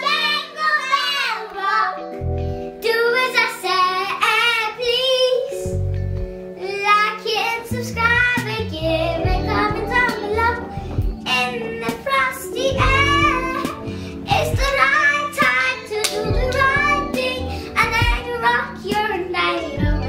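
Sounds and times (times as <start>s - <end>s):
girls singing: 0.0s - 2.1s, 7.0s - 20.0s
backing music track with deep bass: 2.0s - 2.8s, 5.5s - 6.6s, 7.6s - 20.0s.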